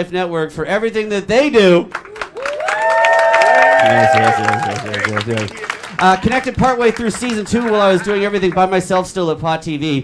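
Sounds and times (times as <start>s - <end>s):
audience clapping and cheering: 1.9s - 8.8s
people whooping: 2.0s - 6.5s.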